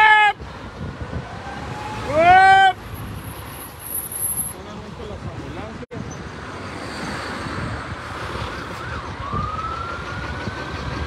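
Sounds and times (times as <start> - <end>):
street traffic rumble: 0.0 - 11.0
siren rising in pitch: 1.2 - 2.4, 8.6 - 11.0.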